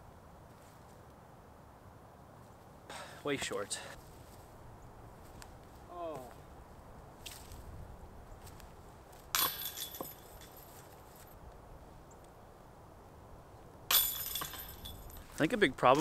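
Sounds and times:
sharp metallic clatter: 9.3 - 10.6.

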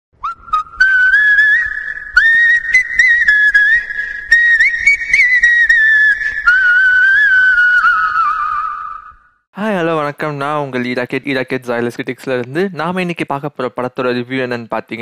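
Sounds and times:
person whistling a tune: 0.2 - 9.1.

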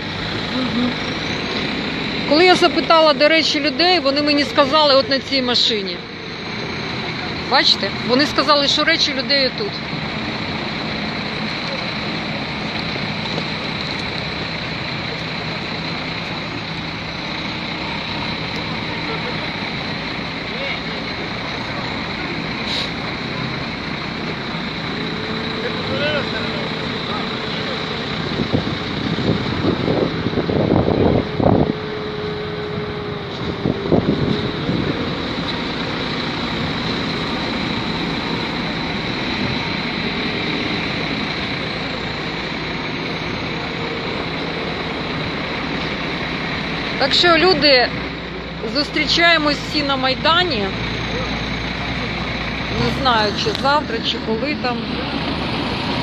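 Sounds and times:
dump truck engine rumbling: 0.0 - 56.0.

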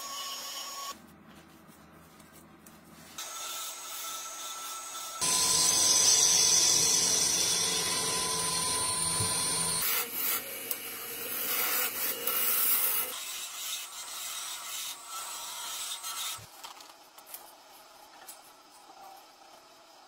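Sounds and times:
wood lathe gouge scraping: 5.2 - 10.0.

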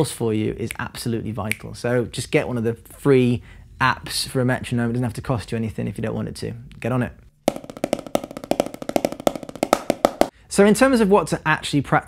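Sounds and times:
drumsticks on rubber practice pad: 7.5 - 10.3.

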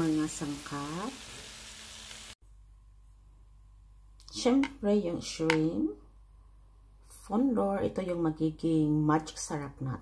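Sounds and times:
shrimp sizzling in butter: 0.0 - 2.4.

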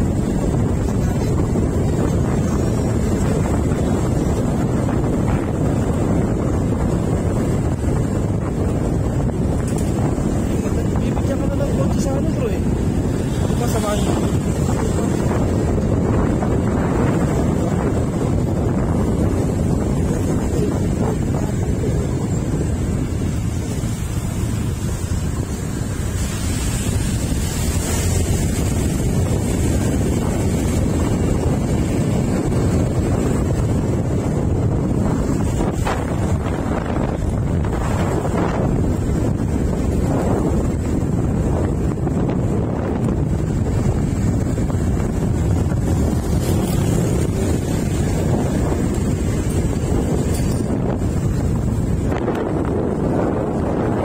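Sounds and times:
vehicle rumble on road: 0.0 - 54.0
wind buffeting microphone: 0.0 - 54.0.

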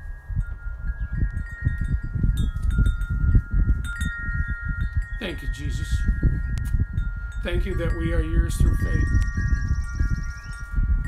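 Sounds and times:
wind chimes ringing: 0.0 - 11.0
wind rumble on microphone: 0.0 - 11.0.

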